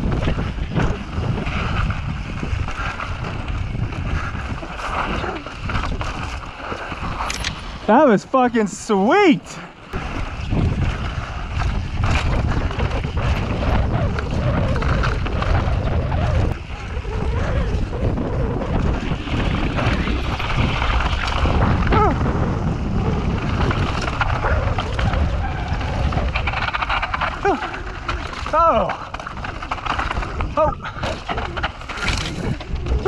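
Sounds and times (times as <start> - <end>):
bike rattling and knocking: 0.0 - 8.3, 9.9 - 33.0
bike tyres rolling over rock: 0.0 - 33.0
wind buffeting microphone: 0.0 - 33.0.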